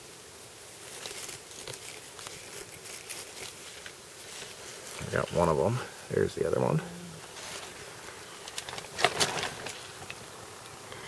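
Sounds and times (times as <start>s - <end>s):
fingers rustling through soil: 0.0s - 10.8s
faint steady hiss: 0.0s - 11.0s.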